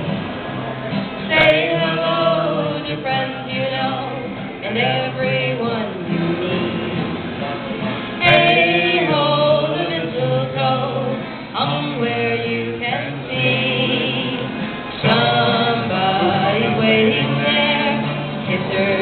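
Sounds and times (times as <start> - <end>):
acoustic guitar: 0.0 - 19.0
woman and man singing carol: 1.3 - 7.1, 8.2 - 19.0.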